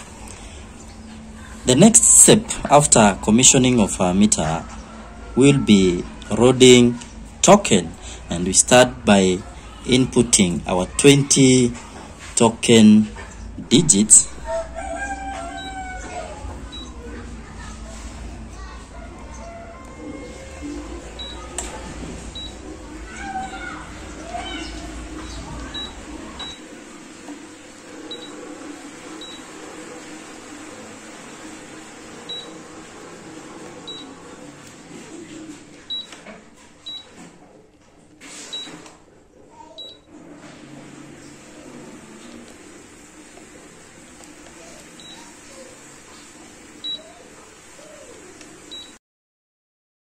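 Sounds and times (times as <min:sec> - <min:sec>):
low background noise: 0:00.0 - 0:40.4
keypad beeps: 0:16.7 - 0:17.0, 0:22.4 - 0:22.6, 0:25.2 - 0:26.6, 0:28.1 - 0:28.4, 0:29.2 - 0:29.4, 0:33.9 - 0:34.2, 0:35.9 - 0:36.2, 0:36.8 - 0:37.1, 0:39.8 - 0:40.1, 0:44.9 - 0:45.3, 0:46.8 - 0:47.0.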